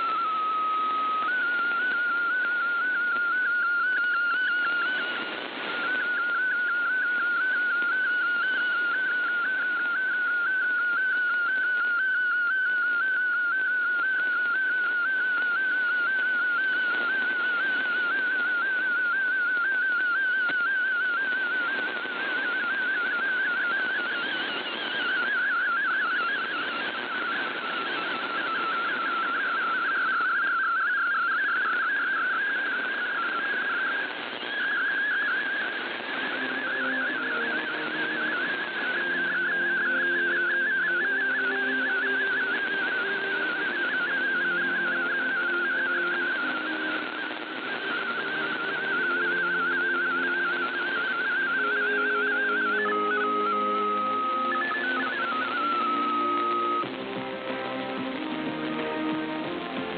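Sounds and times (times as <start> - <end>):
radio hiss: 0.0 - 59.9
warbling whistle-like radio tone: 0.0 - 59.9.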